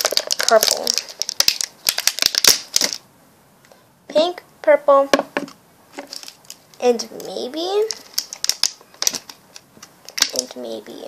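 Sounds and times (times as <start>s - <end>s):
plastic wrapping crinkling: 0.0s - 3.0s, 6.0s - 10.6s.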